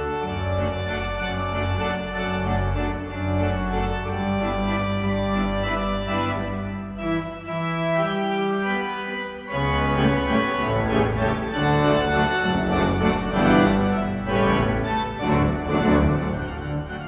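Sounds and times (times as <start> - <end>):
pipe organ playing chords: 0.0 - 17.0.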